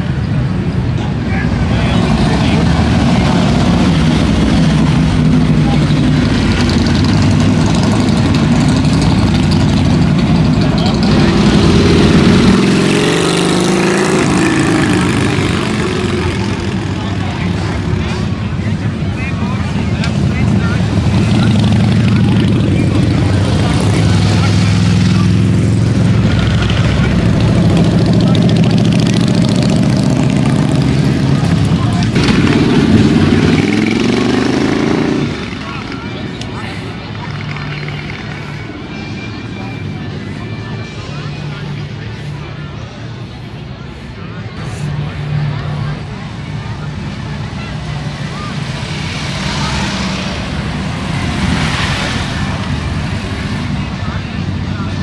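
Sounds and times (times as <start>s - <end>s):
motorcycles riding past: 0.0s - 55.0s.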